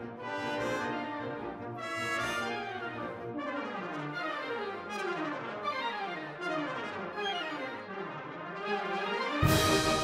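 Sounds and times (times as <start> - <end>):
orchestral music led by brass: 0.0 - 10.0.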